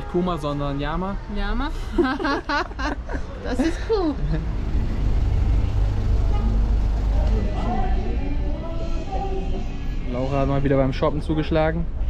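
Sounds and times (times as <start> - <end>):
minibus engine rumble: 1.6 - 11.0.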